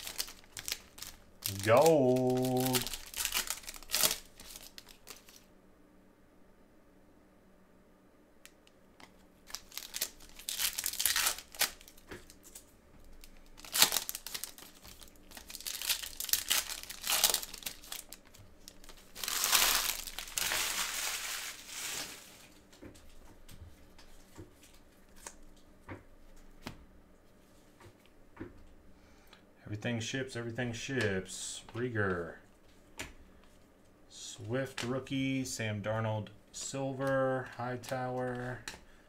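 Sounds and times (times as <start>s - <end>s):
foil wrappers tearing and crinkling: 0.0s - 5.5s, 9.4s - 12.6s, 13.2s - 22.5s.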